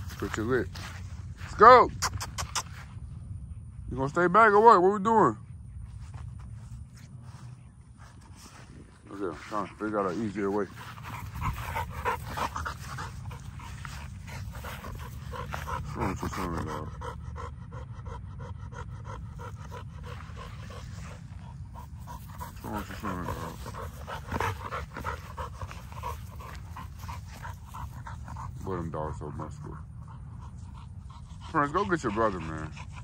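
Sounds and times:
dog panting: 0.0 - 1.4, 5.4 - 33.0.

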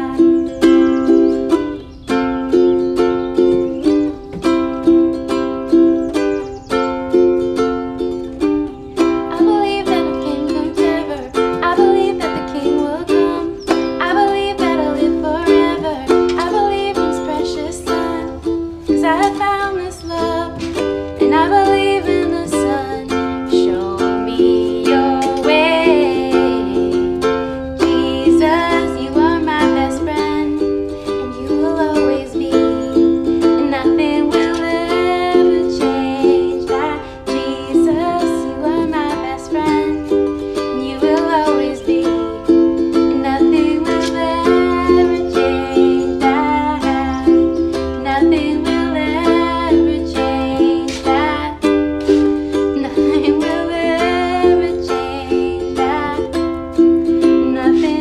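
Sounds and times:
woman singing: 0.0 - 4.4, 9.0 - 58.0
ukuleles strumming chords: 0.0 - 58.0.

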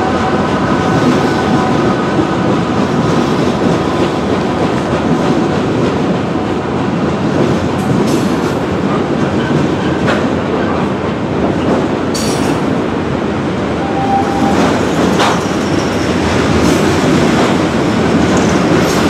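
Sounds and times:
train cars clanking: 0.0 - 19.0
train wheels rumbling on rail: 0.0 - 19.0.

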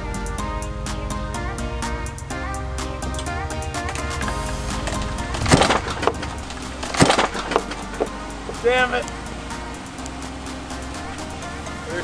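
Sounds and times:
background music: 0.0 - 12.0
wooden ramp cracking: 3.9 - 8.6.

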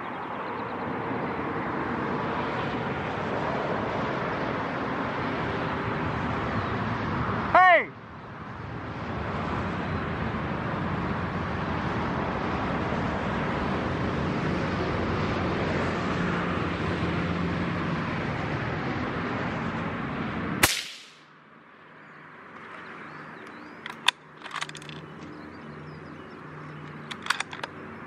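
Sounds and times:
rushing background noise: 0.0 - 28.0
rifle shot: 20.6 - 21.3.

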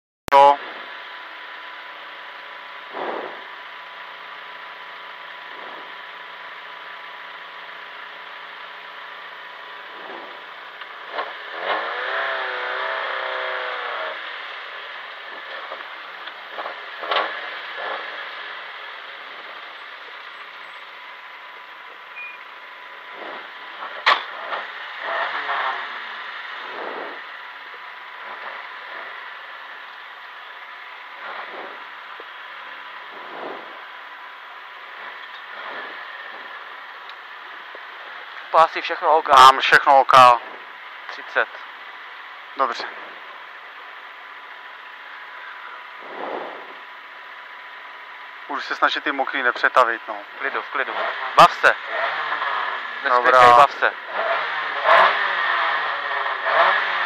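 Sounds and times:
car engine at low revs: 0.3 - 57.0.

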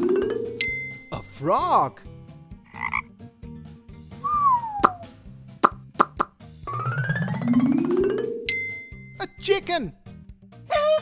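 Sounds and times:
frog croaking: 2.7 - 3.2
falling whistle-like glide: 4.2 - 5.0
sharp pops: 4.8 - 6.3.

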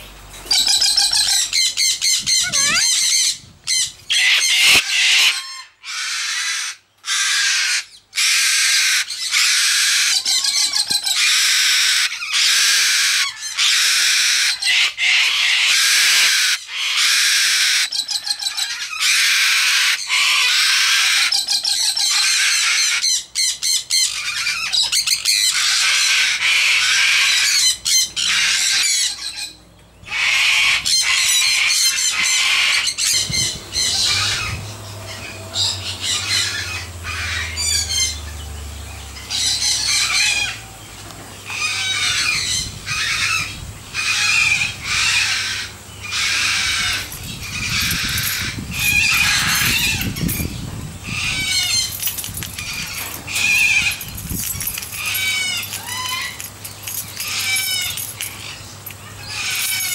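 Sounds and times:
cockatoos screeching: 0.5 - 38.2, 41.5 - 59.9.

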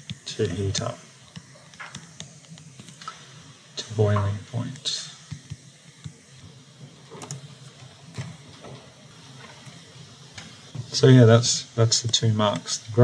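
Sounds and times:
low steady hiss: 0.0 - 13.0.

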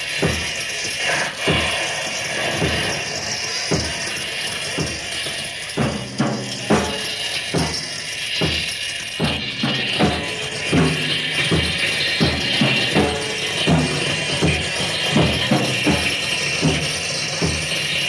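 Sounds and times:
high jangling hiss: 0.0 - 18.0
steady beat with low notes: 3.6 - 18.0.

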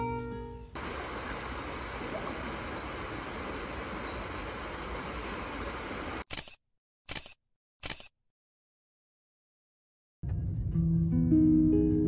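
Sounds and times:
stream water rushing over rocks: 0.8 - 6.2
camera shutter clicks: 6.2 - 8.2.

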